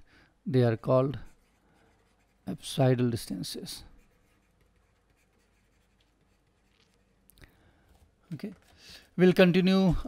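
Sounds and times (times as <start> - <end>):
stylus scratching on tablet: 0.9 - 7.3.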